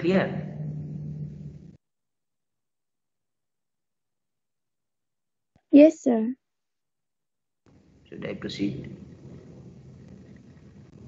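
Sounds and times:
low rumbling hiss: 0:00.0 - 0:01.8, 0:07.7 - 0:11.0.

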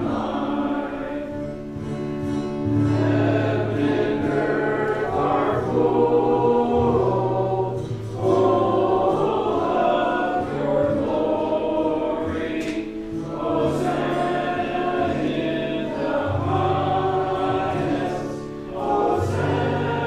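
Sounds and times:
congregation singing a hymn: 0:00.0 - 0:20.0.

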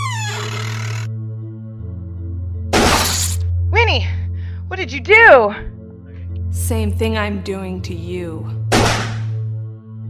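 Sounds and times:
door creaking open: 0:00.0 - 0:01.1
low droning film score: 0:00.5 - 0:10.0.

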